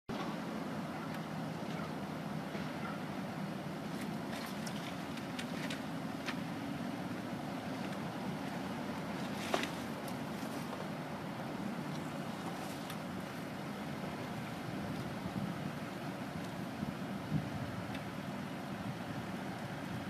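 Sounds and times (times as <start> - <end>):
steady low rumble: 0.1 - 20.0.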